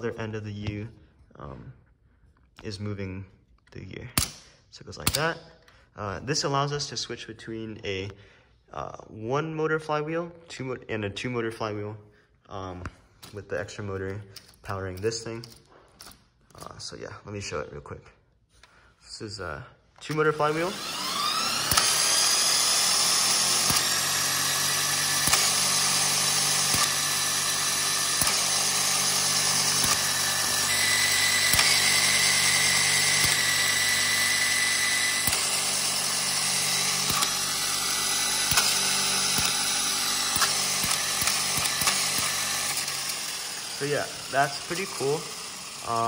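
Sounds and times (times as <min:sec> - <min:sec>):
robot flywheel motor whine: 0:20.4 - 0:46.0
gear noise and clicks: 0:38.4 - 0:43.4.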